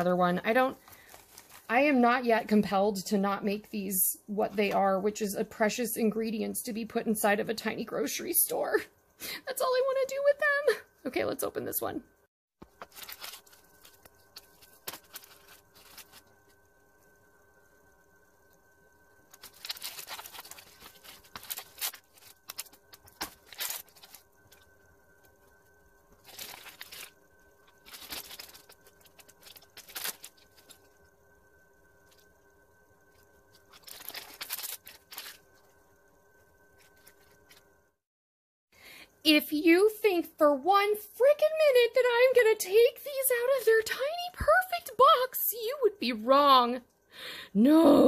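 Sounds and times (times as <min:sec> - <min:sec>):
plastic wrapper crinkling and tearing: 0:00.9 - 0:01.7, 0:12.6 - 0:16.4, 0:19.3 - 0:24.8, 0:26.1 - 0:31.0, 0:33.2 - 0:35.7.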